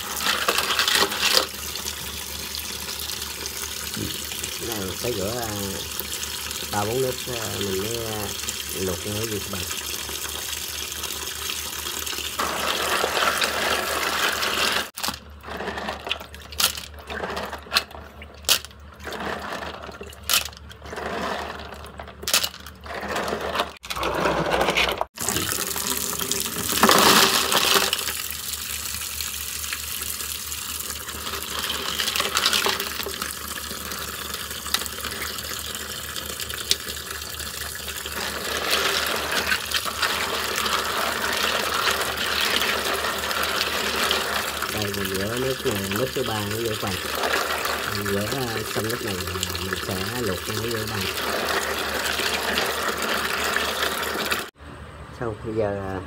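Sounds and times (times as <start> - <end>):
hand stirring clams: 0.0 - 1.6, 12.4 - 25.5, 31.2 - 33.2, 38.0 - 54.4
tap water pouring into basin: 0.0 - 15.2, 25.2 - 54.6.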